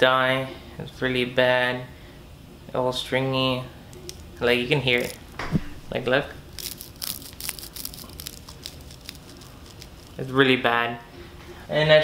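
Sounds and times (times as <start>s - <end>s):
plastic strings crackling: 3.9s - 10.6s.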